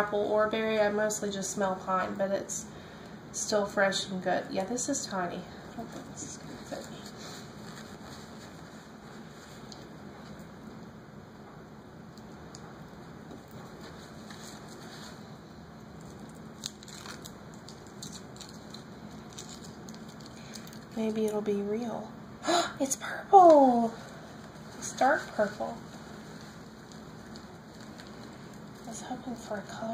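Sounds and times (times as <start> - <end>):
foil packet crinkling: 13.3 - 21.3, 24.0 - 29.9.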